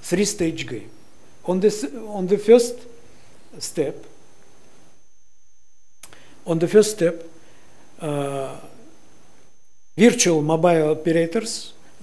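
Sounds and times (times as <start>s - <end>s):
faint high-pitched whine: 0.0s - 12.0s
low room hum: 0.0s - 12.0s.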